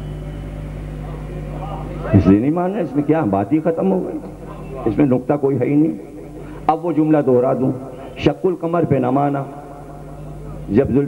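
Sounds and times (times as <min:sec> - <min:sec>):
low electrical mains hum: 0:00.0 - 0:11.0
faint voices: 0:00.2 - 0:08.4, 0:09.0 - 0:11.0.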